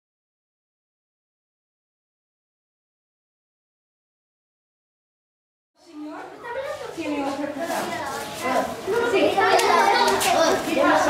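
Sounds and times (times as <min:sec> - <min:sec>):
children chattering: 0:05.8 - 0:11.0.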